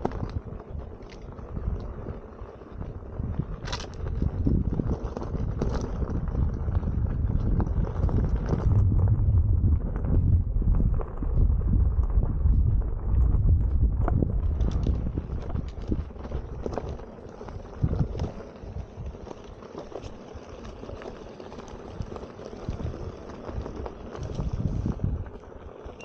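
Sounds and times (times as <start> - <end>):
wind buffeting microphone: 0.0 - 26.0
stones knocking and clicking: 3.6 - 6.5, 13.2 - 24.7
tyre crunching on gravel: 10.7 - 26.0.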